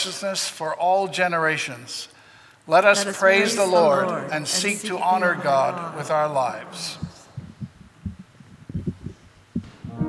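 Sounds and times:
soft low dull thuds: 0:07.3 - 0:10.0.

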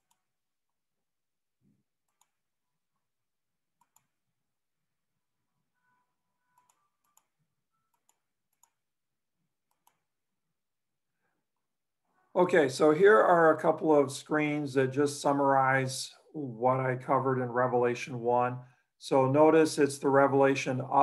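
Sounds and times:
computer mouse clicks: 0:02.0 - 0:02.4, 0:03.8 - 0:04.2, 0:06.5 - 0:08.8, 0:09.7 - 0:10.1.

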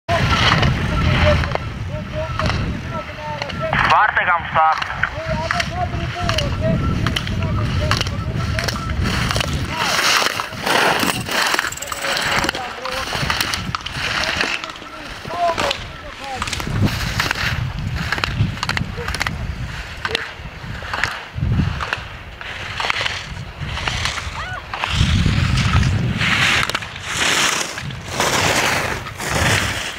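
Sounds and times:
wind on microphone: 0:00.1 - 0:29.9
skis scraping on snow: 0:07.8 - 0:20.0, 0:21.6 - 0:29.9.

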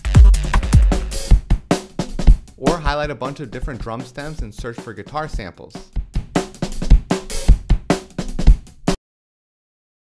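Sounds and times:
kick drum: 0:00.0 - 0:03.0, 0:06.0 - 0:07.9
snare drum: 0:00.0 - 0:08.9.

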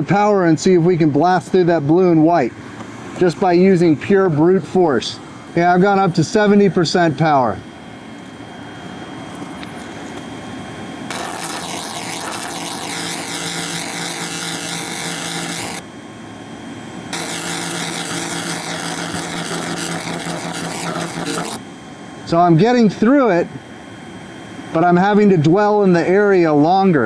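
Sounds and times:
laser cleaner hissing: 0:11.1 - 0:15.8, 0:17.1 - 0:21.6.

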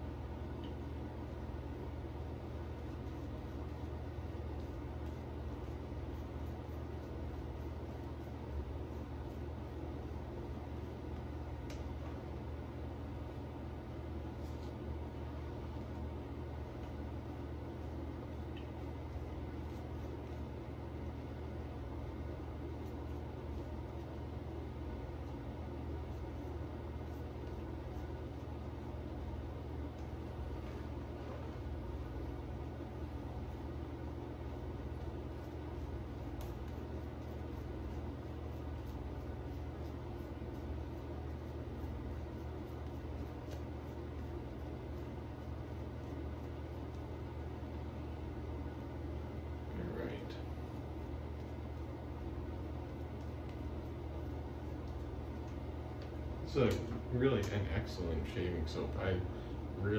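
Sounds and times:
low room hum: 0:00.0 - 0:59.9
shaving brush bristly strokes: 0:00.8 - 0:56.5.

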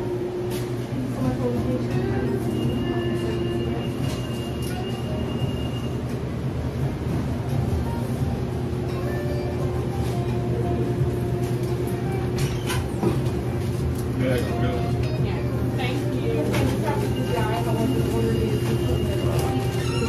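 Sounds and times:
quiet music: 0:00.0 - 0:20.0.

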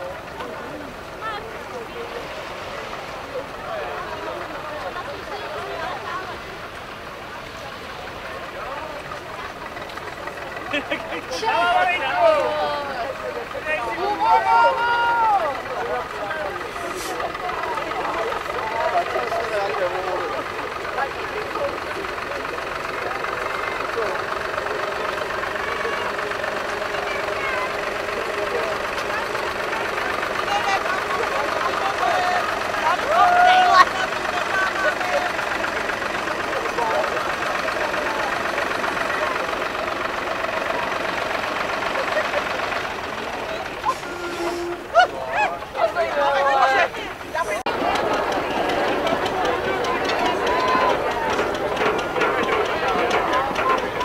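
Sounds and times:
people chattering: 0:00.0 - 0:54.0
tractor engine running: 0:00.0 - 0:54.0.

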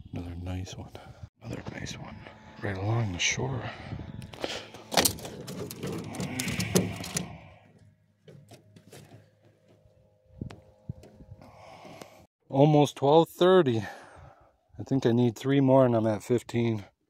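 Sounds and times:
knocks and clicks in metal boat: 0:04.9 - 0:07.3.

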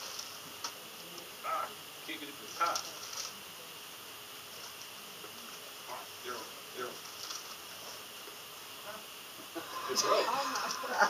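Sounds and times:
faint high-pitched whine and hiss: 0:00.0 - 0:11.0.

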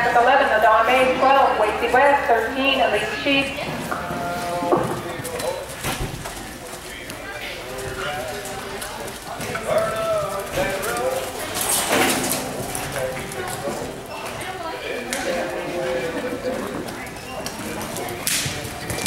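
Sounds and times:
people calling out: 0:00.0 - 0:05.2.

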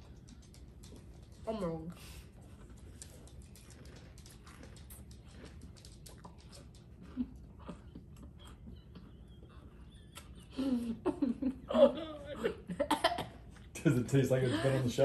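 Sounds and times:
crunchy cereal being chewed: 0:00.0 - 0:10.6.

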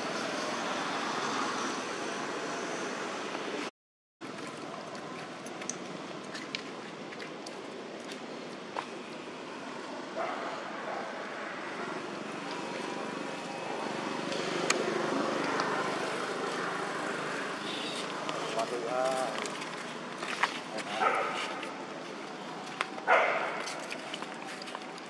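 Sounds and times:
outdoor background noise: 0:00.0 - 0:25.0.

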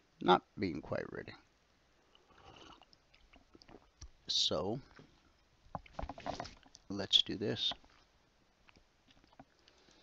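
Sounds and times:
clicks and rustles near microphone: 0:04.9 - 0:06.9.

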